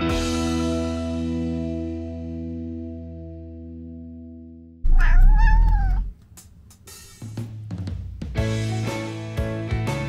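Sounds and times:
cat meowing: 4.9 - 6.2.

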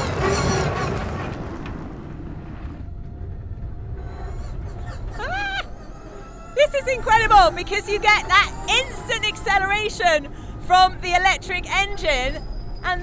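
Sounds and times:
vehicle driving on dirt track: 0.0 - 5.3.

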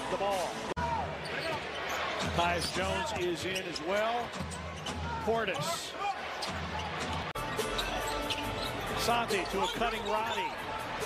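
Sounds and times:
arena music: 6.6 - 11.0.

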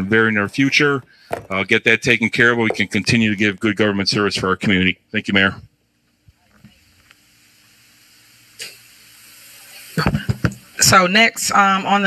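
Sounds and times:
low steady hum: 0.0 - 12.0
knock on microphone: 10.1 - 10.6.

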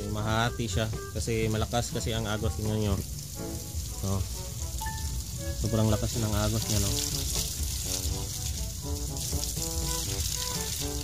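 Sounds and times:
water gushing onto concrete: 0.0 - 11.0.

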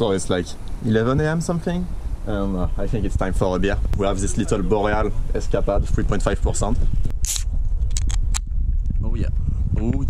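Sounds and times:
wind rumble on microphone: 0.0 - 10.0
can opening hiss: 7.2 - 8.2.

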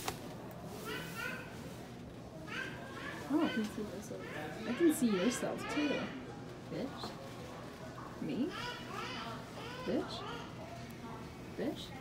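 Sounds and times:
children chattering: 0.6 - 12.0.

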